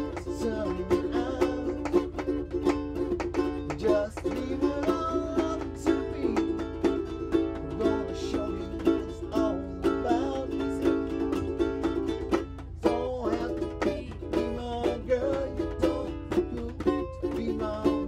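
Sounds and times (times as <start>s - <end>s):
steady low hum: 0.0s - 18.0s
ukuleles strumming: 0.0s - 18.0s.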